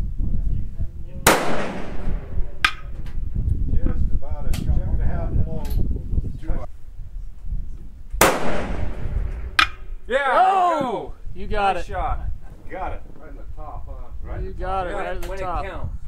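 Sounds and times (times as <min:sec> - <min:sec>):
loud rifle shots with echo: 0:01.2 - 0:02.9, 0:08.2 - 0:10.0.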